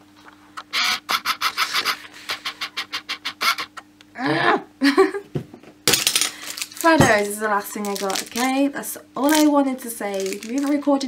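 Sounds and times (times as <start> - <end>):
plastic crinkling: 5.9 - 8.6, 9.2 - 11.0.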